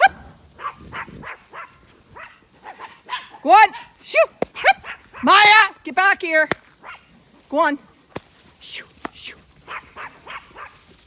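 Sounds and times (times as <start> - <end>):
small dog yapping: 0.0 - 5.3, 9.7 - 10.8.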